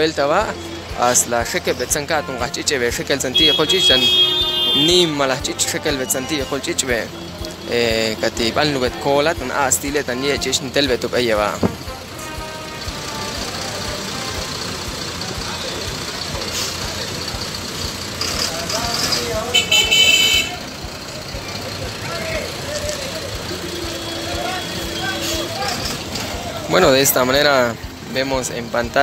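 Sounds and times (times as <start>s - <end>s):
car horn steady note: 0.0s - 17.4s, 19.4s - 20.9s, 23.5s - 26.0s
people's voices: 0.0s - 29.0s
truck engine and road noise: 0.0s - 29.0s
high-pitched horn toot: 3.2s - 8.9s, 11.6s - 14.8s, 19.5s - 20.7s.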